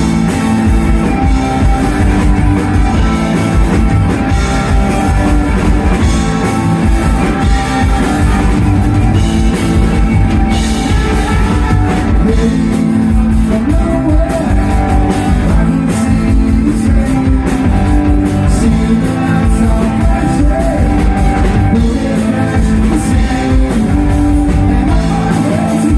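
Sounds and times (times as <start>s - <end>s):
bass guitar: 0.0s - 25.9s
drum kit beat: 0.0s - 25.9s
electric guitars: 0.0s - 25.9s.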